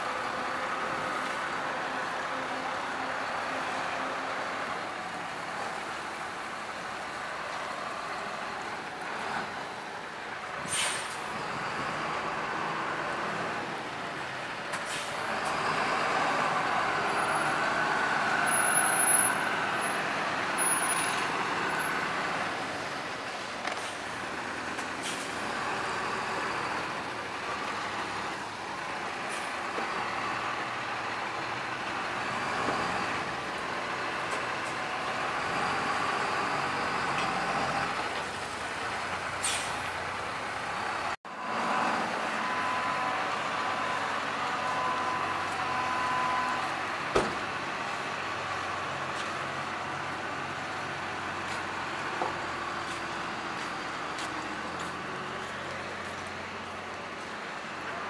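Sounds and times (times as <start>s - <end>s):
bus engine passing: 0.0s - 58.0s.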